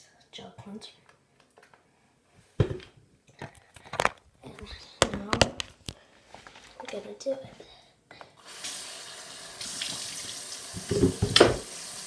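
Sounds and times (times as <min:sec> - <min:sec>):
faucet water splashing into sink: 0:08.5 - 0:12.0.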